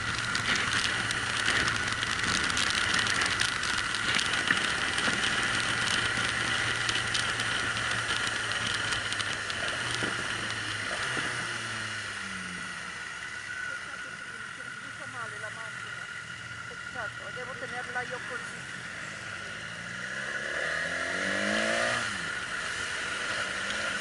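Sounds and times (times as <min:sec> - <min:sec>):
motorcycle engine: 0:00.0 - 0:24.0
wind and road noise: 0:00.0 - 0:24.0.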